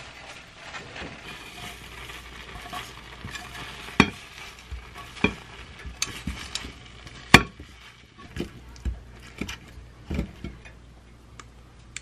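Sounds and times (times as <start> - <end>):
food sizzling in a frying pan: 0.0 - 10.8
spatula stirring and scraping: 0.0 - 10.8.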